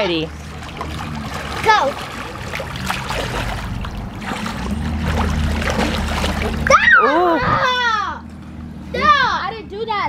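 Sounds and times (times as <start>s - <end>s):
pool water splashing: 0.0s - 9.5s
child's voice: 6.7s - 8.2s, 8.9s - 10.0s.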